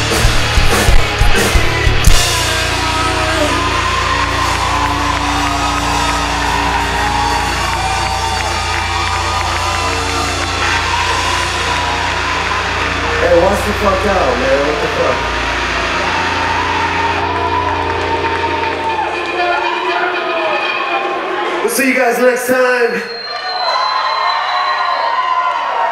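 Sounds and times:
held synth tones: 0:02.0 - 0:21.7
wavering voice-like sound: 0:02.6 - 0:06.6.

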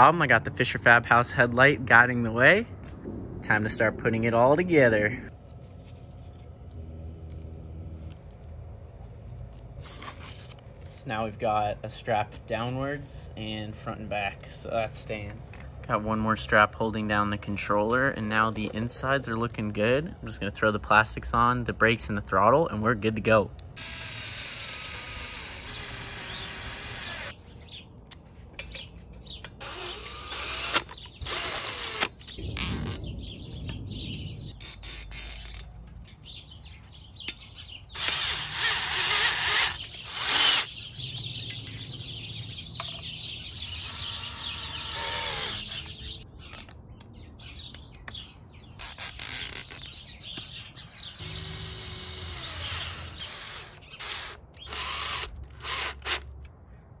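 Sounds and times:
cordless drill driving screws: 0:23.8 - 0:27.3, 0:29.6 - 0:32.8, 0:38.0 - 0:40.7, 0:43.7 - 0:45.9, 0:51.2 - 0:56.3
metal parts clicking and rattling: 0:34.6 - 0:36.0, 0:46.5 - 0:46.8.

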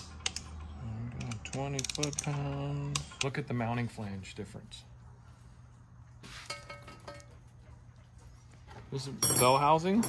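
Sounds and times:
low electrical hum: 0:00.0 - 0:10.0
metal clinking on a bench: 0:06.5 - 0:07.4, 0:09.2 - 0:10.0.

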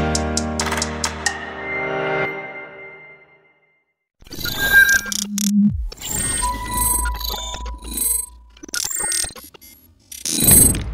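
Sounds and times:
glitchy stuttering clicks: 0:04.2 - 0:10.9.

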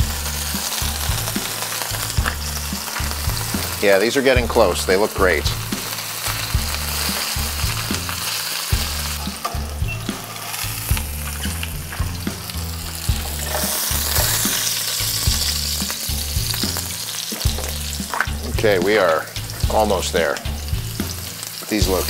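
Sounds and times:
mushrooms sizzling in oil: 0:00.0 - 0:22.0.

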